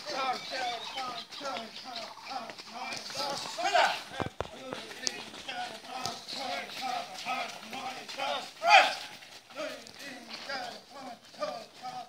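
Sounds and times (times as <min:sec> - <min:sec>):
men calling out: 0:00.0 - 0:12.0.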